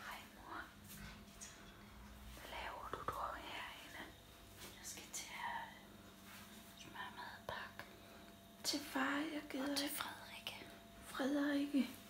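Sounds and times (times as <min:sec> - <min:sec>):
person whispering: 0:02.4 - 0:05.8, 0:06.8 - 0:07.8.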